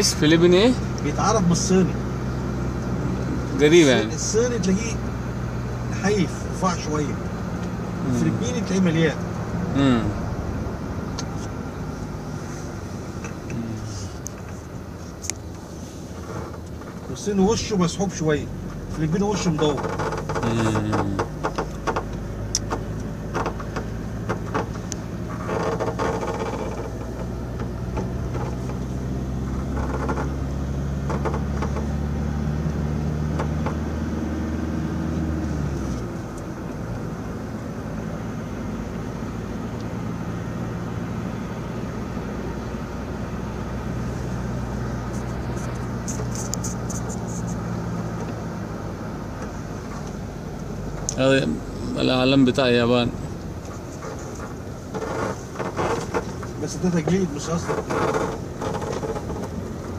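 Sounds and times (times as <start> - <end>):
car engine hum: 0.0 - 59.9
road noise: 0.0 - 59.9.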